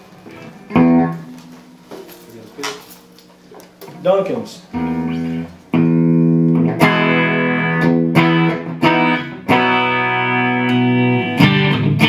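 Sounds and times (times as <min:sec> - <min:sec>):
guitar handling clicks and knocks: 0:00.3 - 0:04.0
electric guitar strings ringing: 0:00.3 - 0:12.0.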